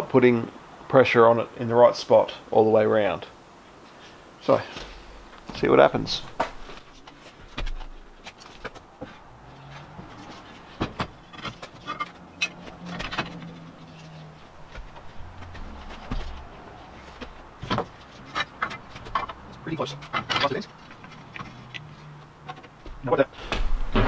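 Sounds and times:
metal bender clicking and clunking: 0:09.8 - 0:16.5, 0:17.2 - 0:24.0.

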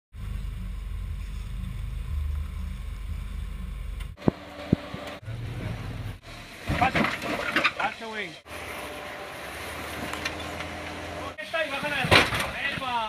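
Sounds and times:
car engine rumbling: 0:00.1 - 0:12.6
low steady hum: 0:00.2 - 0:07.6.

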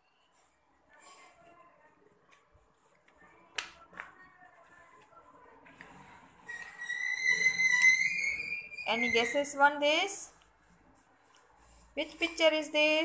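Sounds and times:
high whistle: 0:06.6 - 0:09.4.

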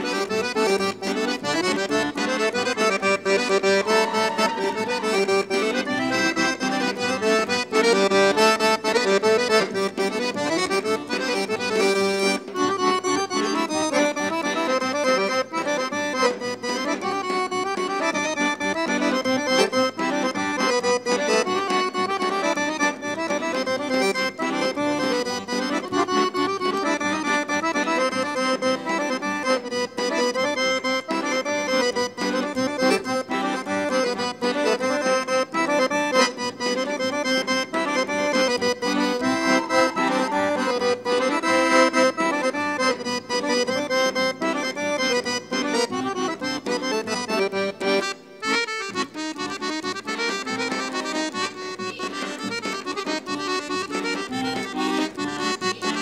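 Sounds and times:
accordion melody: 0:00.0 - 0:56.0.

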